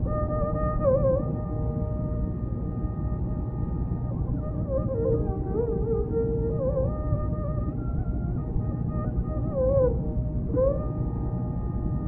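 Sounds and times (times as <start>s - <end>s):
classical melody over drone: 0.0s - 12.0s.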